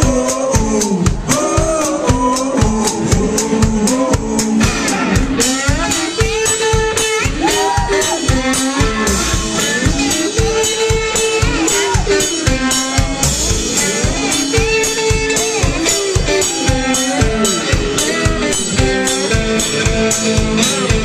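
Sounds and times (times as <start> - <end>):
drum kit beat: 0.0 - 21.0
electric guitar: 0.0 - 21.0
person singing: 0.0 - 21.0.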